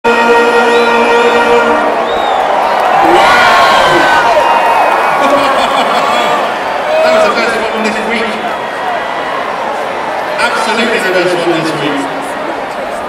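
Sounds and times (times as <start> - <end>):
crowd cheering and whooping: 0.2 - 10.9.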